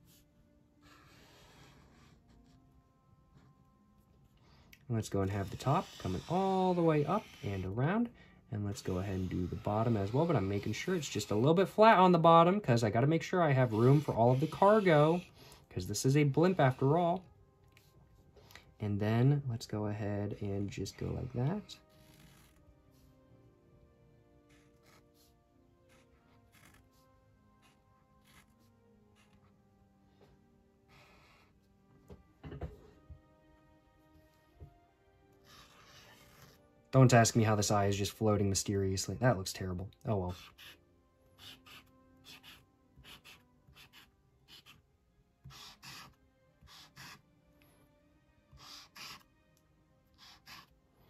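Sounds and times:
faint background music: 0:00.0 - 0:51.0
marker scratching on paper: 0:05.2 - 0:07.8, 0:08.9 - 0:11.5, 0:13.6 - 0:15.3, 0:25.9 - 0:26.8, 0:27.6 - 0:29.4, 0:40.3 - 0:40.8, 0:41.4 - 0:47.2, 0:48.5 - 0:49.3, 0:50.2 - 0:50.7.

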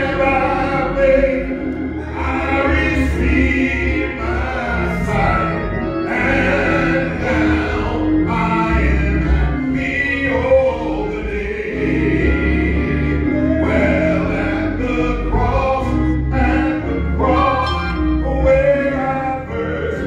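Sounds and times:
gospel singing: 0:00.0 - 0:20.0
low bass accompaniment: 0:00.0 - 0:20.0.

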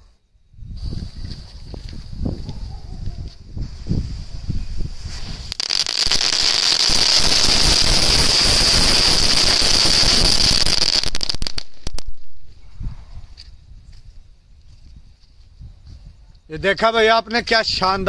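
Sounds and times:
firecracker string popping: 0:05.0 - 0:12.4.

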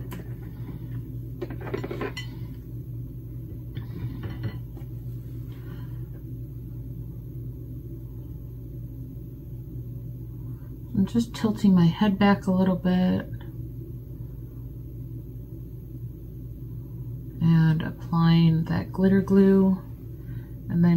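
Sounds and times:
steady low hum: 0:00.0 - 0:20.9.

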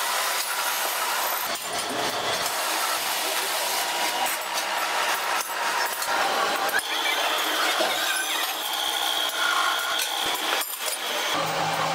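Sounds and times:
drill bit cutting steel: 0:00.0 - 0:11.9.

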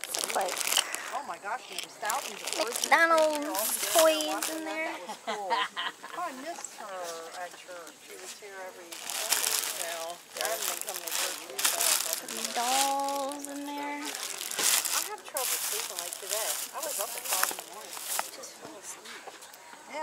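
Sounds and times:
plastic bag crinkling: 0:00.0 - 0:04.9, 0:08.8 - 0:18.5
people talking: 0:00.0 - 0:20.0.

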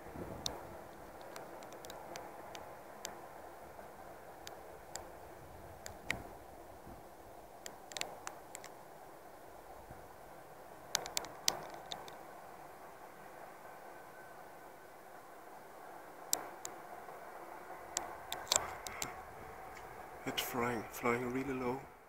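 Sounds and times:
faint steady camera hiss: 0:00.0 - 0:22.0
camera handling clicks and rustles: 0:18.3 - 0:19.2.

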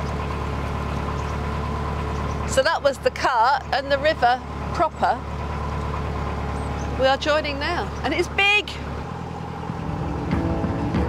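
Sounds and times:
boat engine droning: 0:00.0 - 0:11.0.

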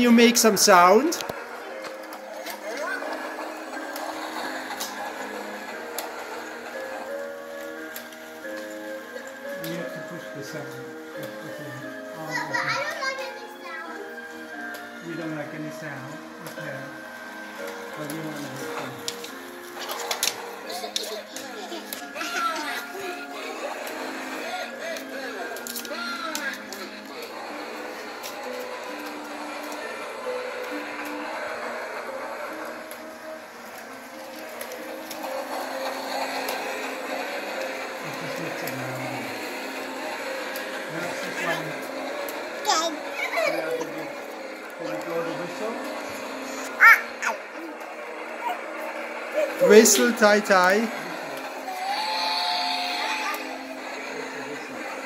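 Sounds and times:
toy train running on track: 0:00.0 - 0:55.0.

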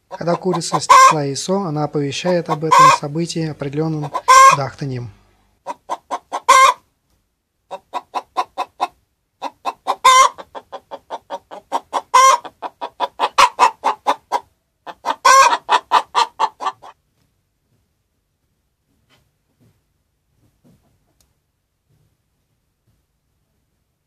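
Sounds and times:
hen cackling: 0:00.0 - 0:01.3, 0:02.2 - 0:03.1, 0:03.8 - 0:04.8, 0:05.6 - 0:06.8, 0:07.7 - 0:17.0.

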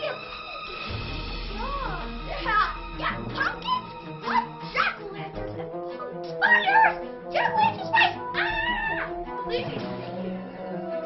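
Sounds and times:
background music: 0:00.0 - 0:11.0
child squealing calls: 0:06.4 - 0:09.1.

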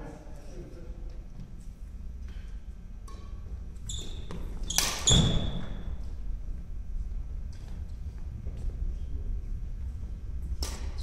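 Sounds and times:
shoe squeak: 0:03.8 - 0:05.9.

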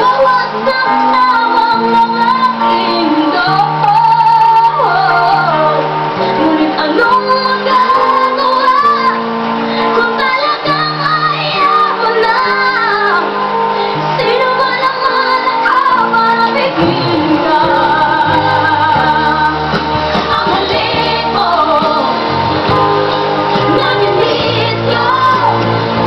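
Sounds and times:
boy singing into a microphone: 0:00.0 - 0:05.8, 0:06.4 - 0:09.2, 0:09.9 - 0:19.6
electronic keyboard chords: 0:00.0 - 0:26.0.

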